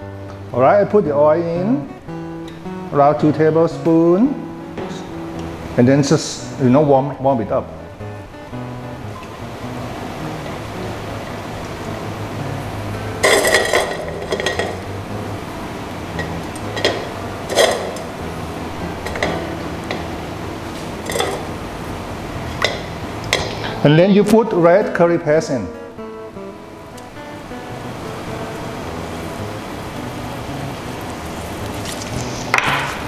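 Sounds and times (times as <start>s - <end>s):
soft background music: 0.0s - 33.0s.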